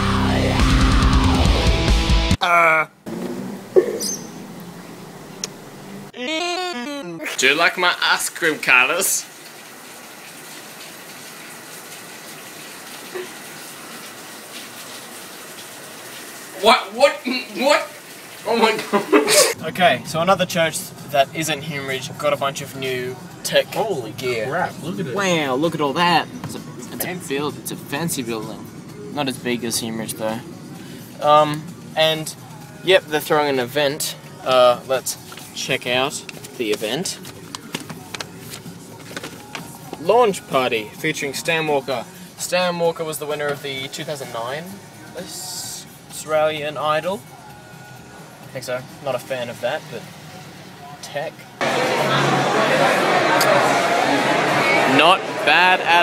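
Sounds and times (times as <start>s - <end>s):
paper flyer rustling: 36.2s - 40.1s.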